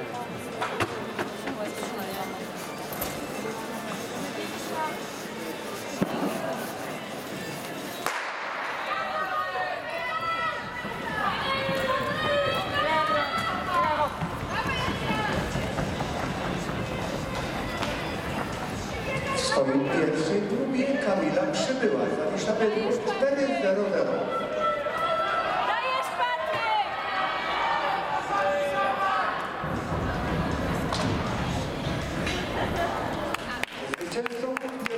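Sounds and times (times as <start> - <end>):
voices in indoor arena: 0.0 - 34.9.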